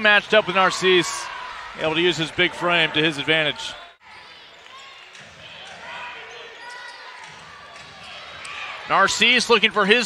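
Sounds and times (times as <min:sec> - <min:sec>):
arena crowd murmur: 0:00.0 - 0:10.0.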